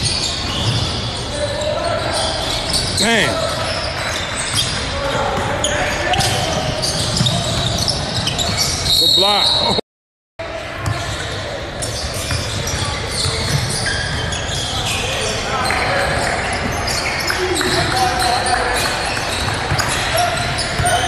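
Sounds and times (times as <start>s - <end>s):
basketball bouncing on court: 0.0s - 1.0s, 4.5s - 8.8s, 11.9s - 14.5s, 19.1s - 21.0s.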